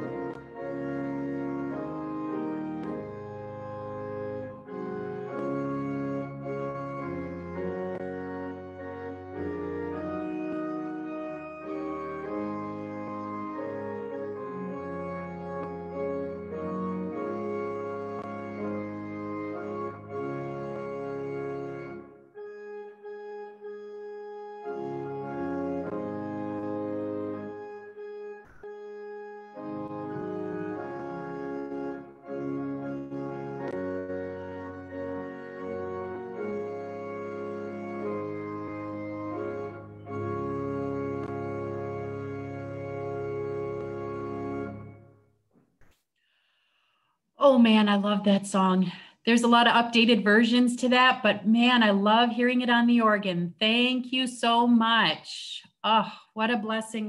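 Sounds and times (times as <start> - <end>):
pipe organ playing a hymn: 0.0 - 45.1.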